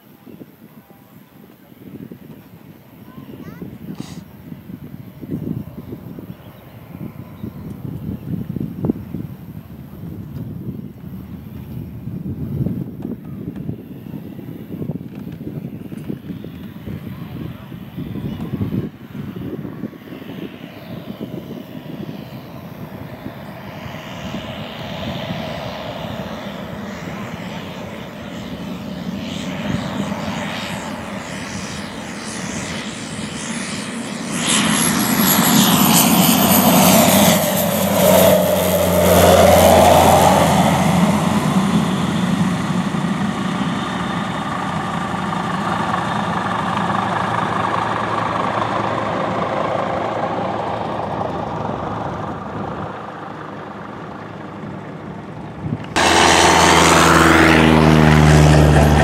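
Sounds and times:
propeller plane engine passing: 0:00.1 - 0:59.0.

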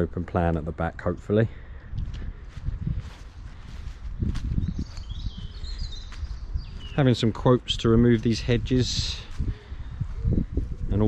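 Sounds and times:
rumble on microphone: 0:01.8 - 0:07.0, 0:07.8 - 0:11.0.

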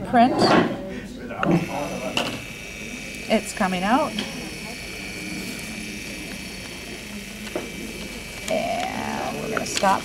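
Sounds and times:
strip printer running: 0:01.3 - 0:10.0.

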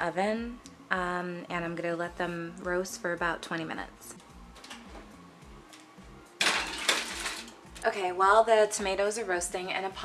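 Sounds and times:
kitchen cookware clattering: 0:06.4 - 0:07.6.

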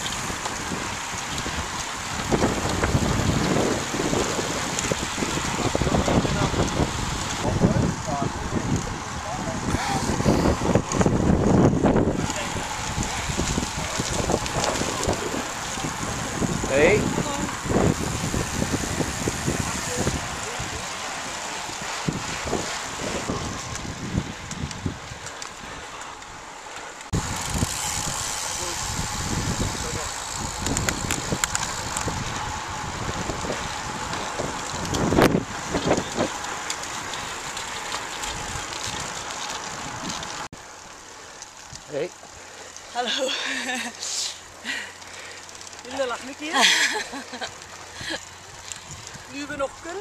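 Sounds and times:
wind rushing over microphone: 0:00.0 - 0:40.7, 0:45.8 - 0:50.0
road noise: 0:00.0 - 0:50.0.

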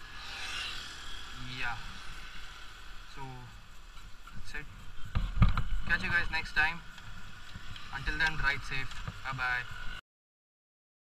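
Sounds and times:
motorcycle low rumble: 0:00.0 - 0:10.0
wind hiss on microphone: 0:03.0 - 0:10.0.

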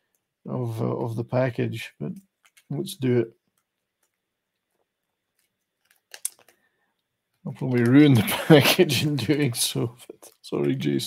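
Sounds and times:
plastic package crinkling: 0:03.4 - 0:11.0.

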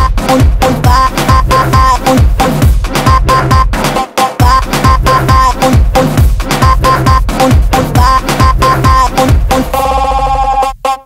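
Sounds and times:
sliding bass line: 0:00.0 - 0:10.8
electronic dance beat: 0:00.0 - 0:11.0.

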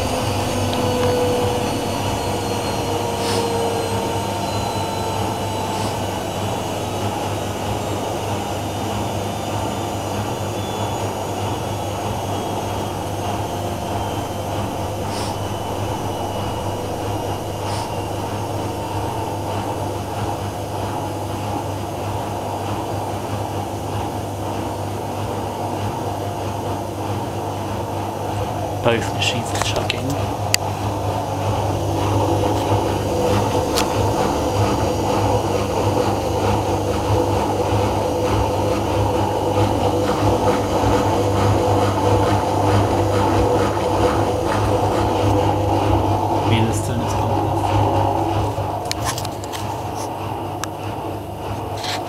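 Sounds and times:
washing machines spinning: 0:00.0 - 0:52.0.

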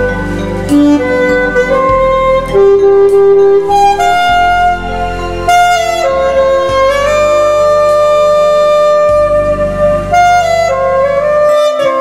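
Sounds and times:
alto saxophone melody: 0:00.0 - 0:12.0
backing track with bass: 0:00.0 - 0:12.0.

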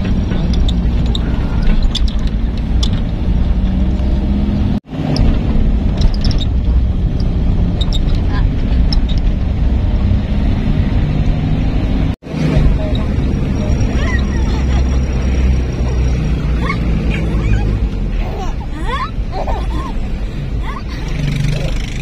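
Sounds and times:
vehicle engine and road noise: 0:00.0 - 0:22.0.

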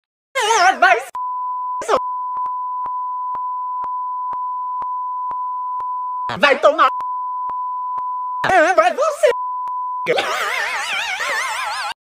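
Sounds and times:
steady electronic beep tone: 0:01.2 - 0:10.2.

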